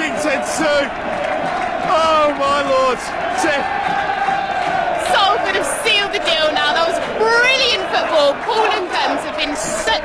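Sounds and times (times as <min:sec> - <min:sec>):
excited voices shouting: 0:00.0 - 0:10.0
football crowd cheering and chanting: 0:00.0 - 0:10.0.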